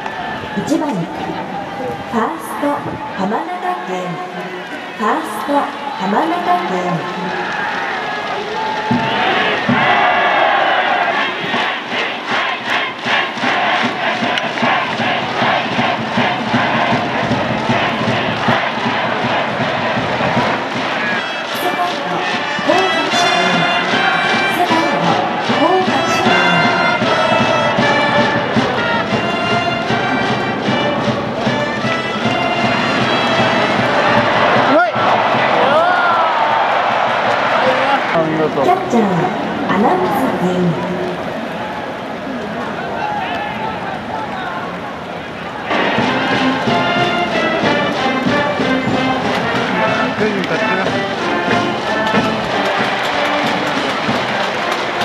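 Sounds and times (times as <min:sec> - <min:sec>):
crowd chanting: 0:00.0 - 0:55.0
steady drumbeat: 0:06.0 - 0:40.7, 0:45.7 - 0:55.0
trumpets playing a tune: 0:17.6 - 0:35.3, 0:45.7 - 0:55.0.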